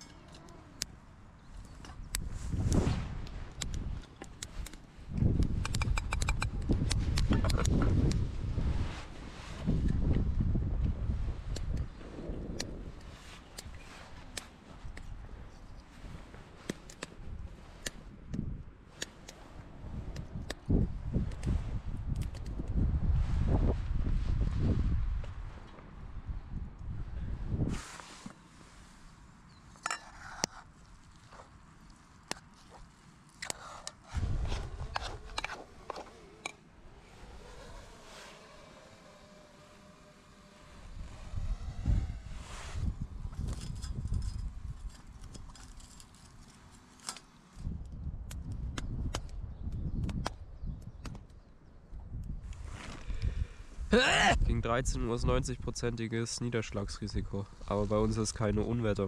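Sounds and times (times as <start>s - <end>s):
low rumbling microphone noise: 19.8s - 27.9s, 34.1s - 45.0s.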